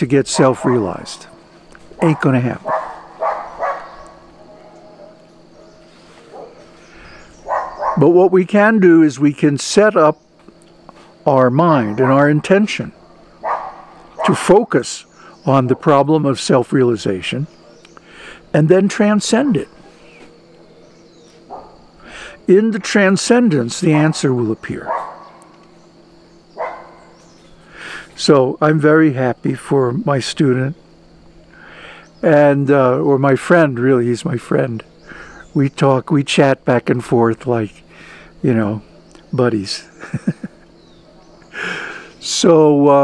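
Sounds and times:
faint steady hum: 0.0s - 43.0s
dog barking: 0.4s - 1.2s, 2.6s - 6.6s, 7.4s - 8.0s, 13.4s - 14.4s, 21.5s - 21.8s, 24.9s - 25.5s, 26.6s - 27.2s.

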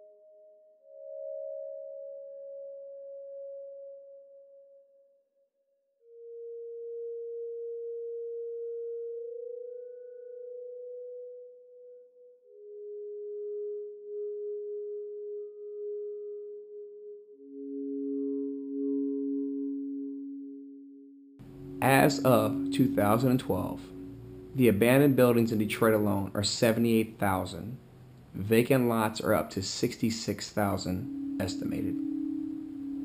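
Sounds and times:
sustained electronic tones: 17.3s - 33.0s.

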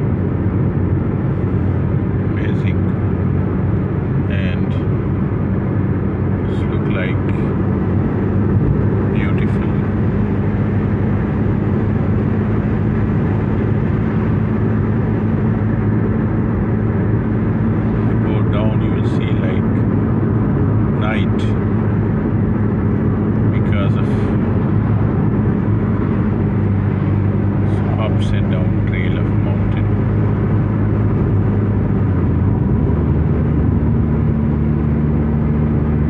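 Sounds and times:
car cabin road and engine drone: 0.0s - 36.0s.

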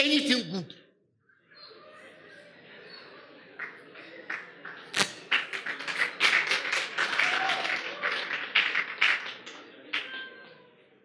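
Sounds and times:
audience applauding: 3.6s - 10.1s.

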